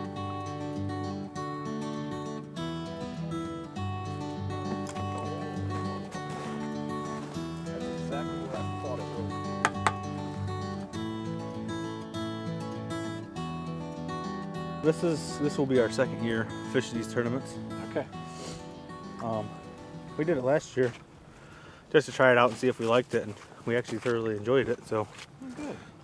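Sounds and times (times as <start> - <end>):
strummed acoustic guitar music: 0.0 - 23.4.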